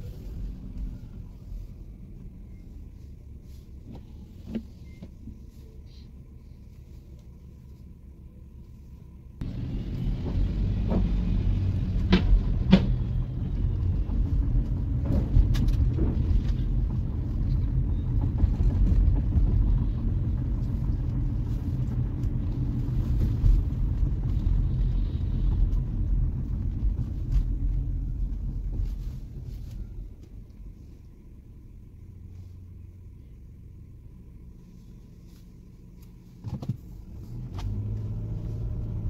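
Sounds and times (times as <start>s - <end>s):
car road and engine rumble: 0.0s - 39.0s.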